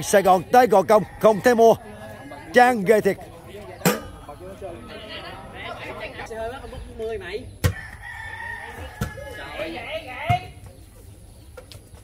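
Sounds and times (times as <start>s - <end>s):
volleyball being hit: 3.8s - 4.2s
rooster crowing: 7.7s - 9.8s.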